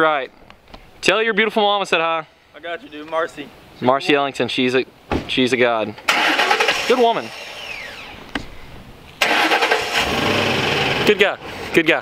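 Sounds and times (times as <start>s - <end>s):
vehicle engine starting and running: 6.1s - 8.3s, 9.2s - 11.8s.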